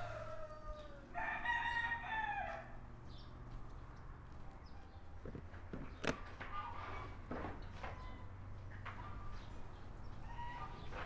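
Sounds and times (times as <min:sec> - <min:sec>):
rooster crowing: 0:00.0 - 0:02.8.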